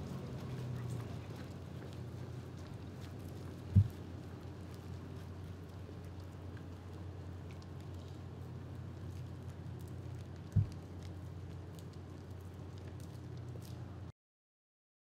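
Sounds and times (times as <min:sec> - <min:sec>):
dull thump: 0:03.7 - 0:04.0.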